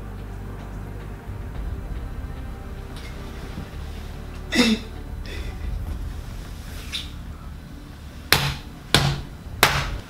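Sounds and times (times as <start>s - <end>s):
low room hum: 0.0s - 10.0s
sharp knocks: 8.3s - 10.0s.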